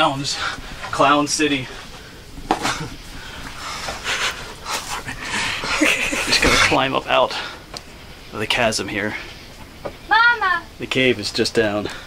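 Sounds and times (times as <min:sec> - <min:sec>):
man breathing hard: 0:03.0 - 0:05.9.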